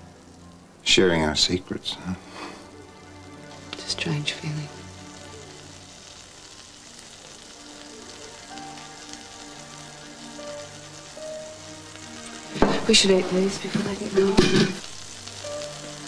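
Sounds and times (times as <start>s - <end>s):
soft slow background music: 0.0s - 16.0s
steady hiss: 0.0s - 16.0s.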